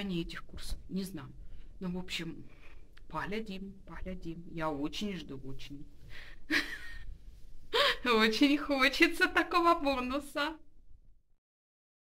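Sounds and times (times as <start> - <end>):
woman speaking: 0.0 - 6.0, 7.8 - 10.7
woman breathing: 6.0 - 8.1.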